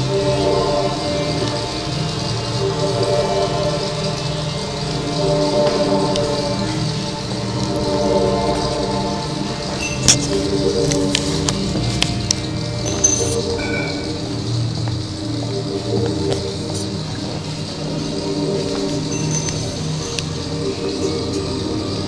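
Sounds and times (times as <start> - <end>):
ambient music with held tones: 0.0 - 22.0.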